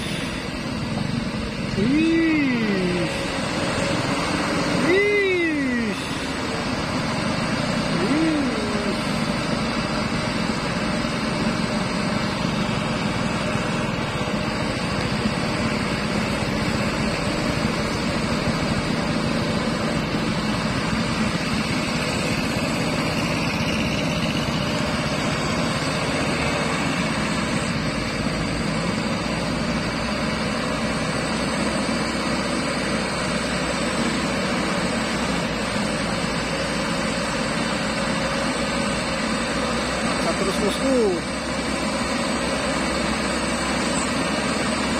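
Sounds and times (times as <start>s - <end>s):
truck diesel engine under load: 0.0s - 44.9s.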